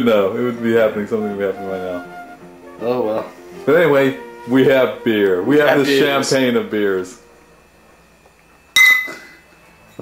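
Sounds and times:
glass bottles clinking: 8.8 - 10.0.

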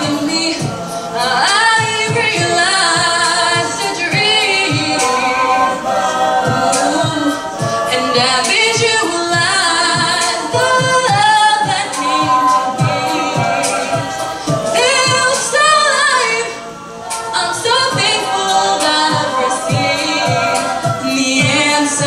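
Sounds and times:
choir backing harmonies: 0.0 - 22.0
vocal percussion beat: 0.0 - 22.0.

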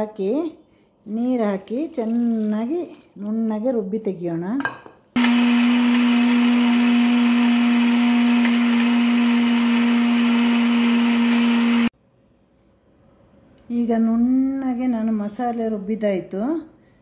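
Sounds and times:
mixer grinder running: 5.2 - 11.9.

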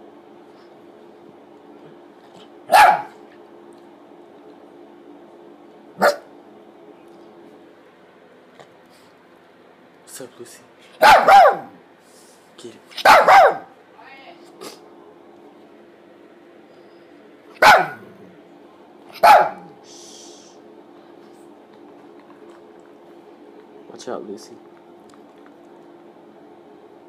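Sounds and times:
faint steady hum: 0.0 - 27.0
small dog barking: 2.7 - 3.2, 6.0 - 6.3, 11.0 - 11.8, 13.0 - 13.8, 17.6 - 18.2, 19.1 - 19.8.

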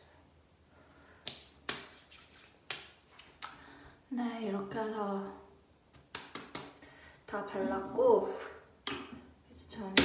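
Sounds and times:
hands stroking skin: 1.2 - 3.5.

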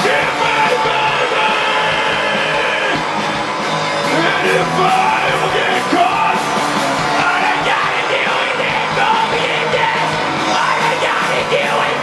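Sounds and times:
rock band playing live: 0.0 - 12.0
person singing into microphone: 7.2 - 12.0.

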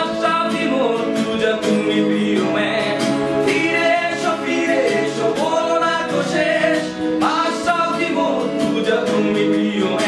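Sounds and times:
voices singing a song: 0.0 - 10.0.

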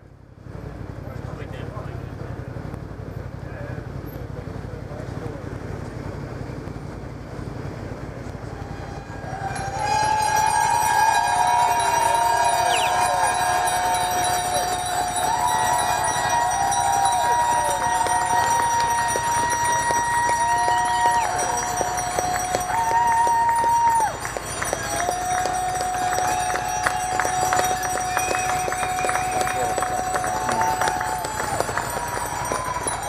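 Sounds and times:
crowd murmuring: 8.4 - 33.0
voices rising: 8.4 - 33.0
bicycle bells ringing: 8.8 - 33.0.

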